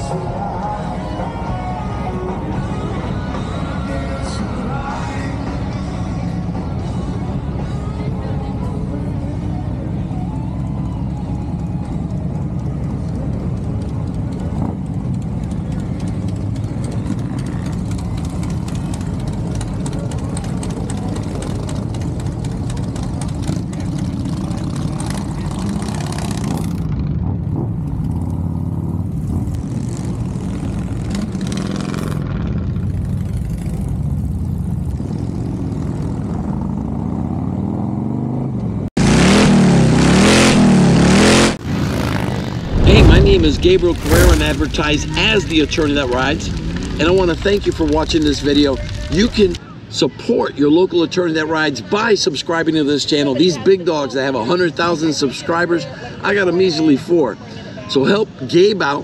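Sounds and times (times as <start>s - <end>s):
motorcycle engine low rumble: 0.0s - 39.0s, 40.6s - 49.8s
loud sound: 42.5s - 49.6s.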